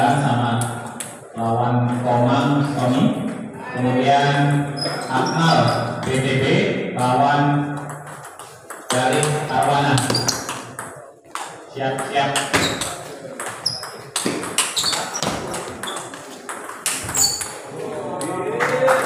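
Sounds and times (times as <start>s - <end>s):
voices in a hall: 0.0s - 19.0s
ping pong ball clicking off paddles: 7.8s - 17.6s.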